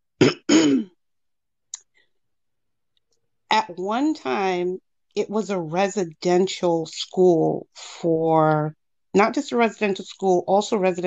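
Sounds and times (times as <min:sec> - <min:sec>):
person clearing throat: 0:00.2 - 0:01.0.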